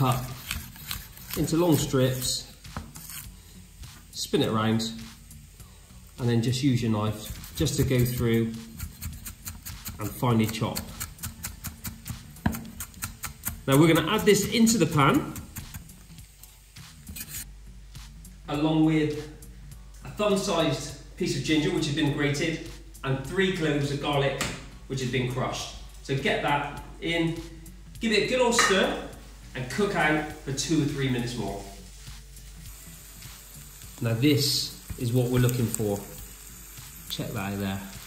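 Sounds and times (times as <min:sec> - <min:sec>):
knife scraping on chopping board: 0:00.0 - 0:03.3, 0:07.2 - 0:14.4, 0:17.1 - 0:17.5
onion sizzling in a pan: 0:00.0 - 0:17.5, 0:28.6 - 0:38.0
quiet background music: 0:00.0 - 0:38.0.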